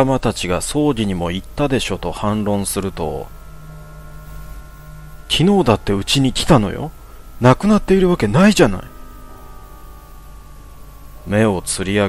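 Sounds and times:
quiet droning background music: 0.0s - 12.0s.

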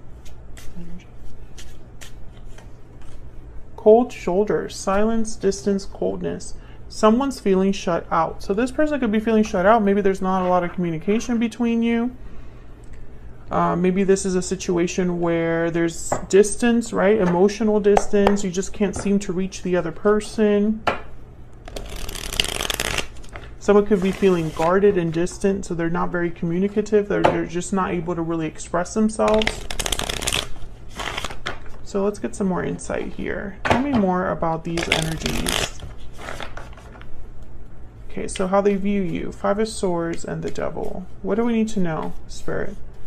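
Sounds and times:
cards being shuffled: 0.1s - 3.3s, 21.6s - 24.8s, 29.3s - 31.8s, 34.7s - 37.1s.

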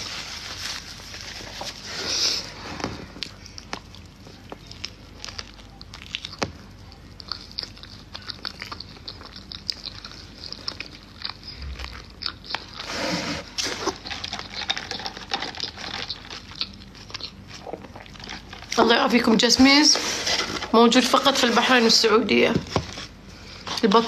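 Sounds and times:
biting and chewing food: 0.0s - 22.0s.

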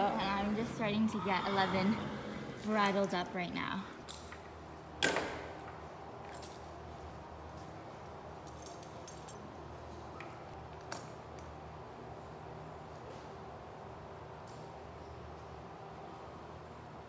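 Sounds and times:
bridle hardware jingling: 6.2s - 10.0s.

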